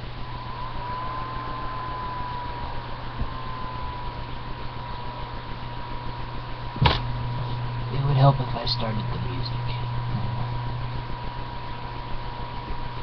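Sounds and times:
even hiss: 0.0 - 11.2
steady low hum: 0.0 - 13.0
thin high-pitched whine: 0.0 - 13.0.

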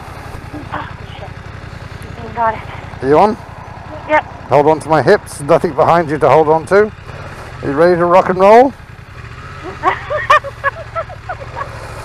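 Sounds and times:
motorcycle engine running: 0.0 - 12.0
person laughing: 0.5 - 1.1, 9.6 - 12.0.

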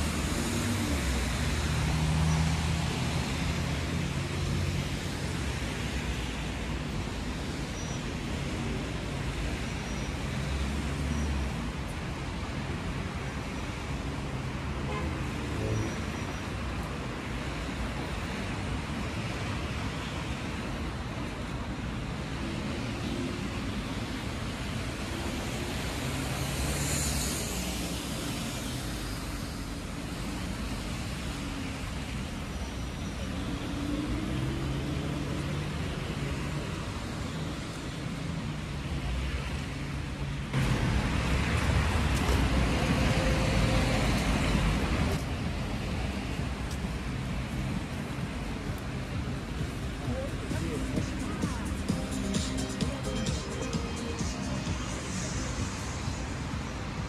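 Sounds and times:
tyre noise on wet road: 0.0 - 53.1
bus passing with hiss: 0.0 - 57.0
traffic engine rumble: 0.0 - 57.0.

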